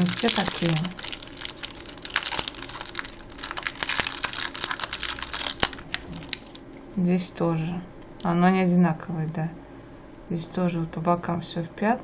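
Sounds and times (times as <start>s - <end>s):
foil wrapper crinkling: 0.0s - 6.6s.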